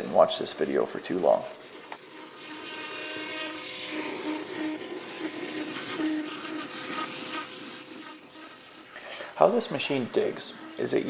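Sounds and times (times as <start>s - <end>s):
rushing water hiss: 1.8s - 11.0s.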